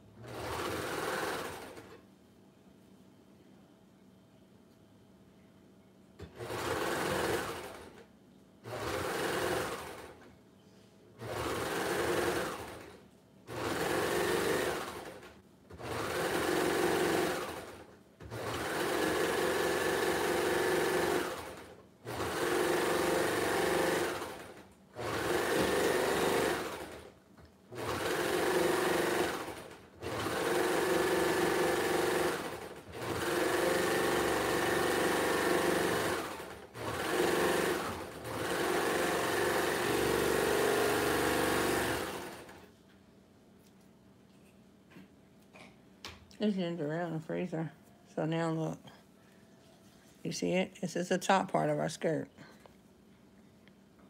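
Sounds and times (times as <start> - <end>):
serger stitching: 0.2 - 2.0, 6.3 - 8.0, 8.6 - 10.2, 11.2 - 27.1, 27.7 - 42.7.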